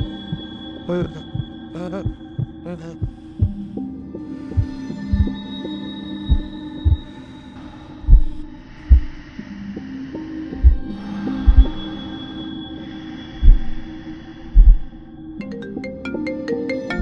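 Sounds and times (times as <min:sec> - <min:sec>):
heavy low heartbeat-like thumps: 0:00.0 - 0:03.8, 0:04.6 - 0:05.4, 0:06.2 - 0:07.2, 0:08.0 - 0:09.3, 0:10.6 - 0:11.8, 0:13.4 - 0:13.9, 0:14.5 - 0:15.0.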